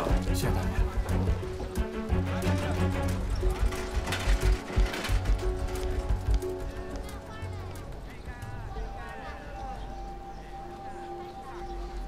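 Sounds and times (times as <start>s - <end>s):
background music with held notes: 0.0s - 12.0s
faint indistinct voices: 0.0s - 12.0s.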